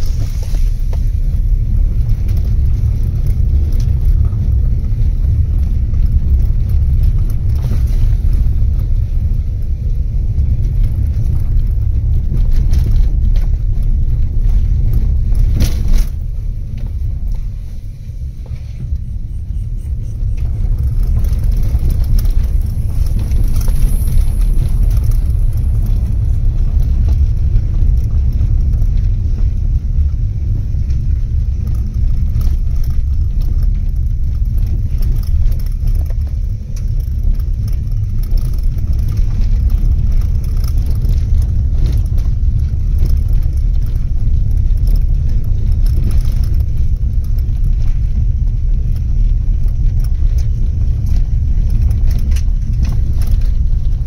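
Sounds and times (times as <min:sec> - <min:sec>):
knocks and rattles from bumps: 0:00.0 - 0:17.6
car driving on dirt track: 0:00.0 - 0:54.0.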